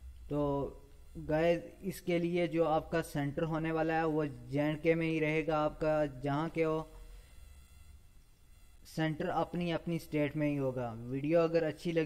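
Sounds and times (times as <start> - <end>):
low steady hum: 0.0 - 12.0
recording hiss: 0.0 - 12.0
man speaking: 0.3 - 7.0, 8.8 - 12.0.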